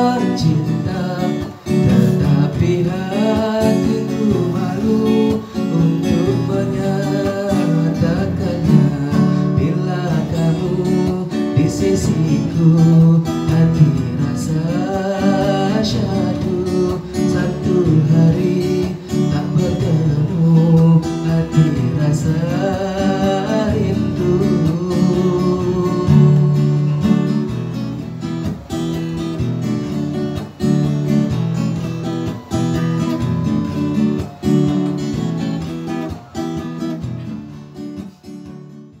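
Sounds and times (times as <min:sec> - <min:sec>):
acoustic guitar strumming chords: 0:00.0 - 0:39.0.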